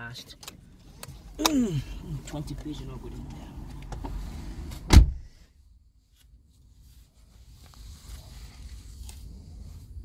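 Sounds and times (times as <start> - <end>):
car door shutting: 3.8 - 5.4.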